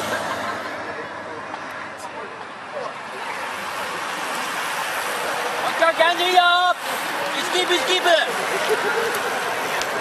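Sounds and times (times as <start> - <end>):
bicycles whirring past: 3.0 - 10.0.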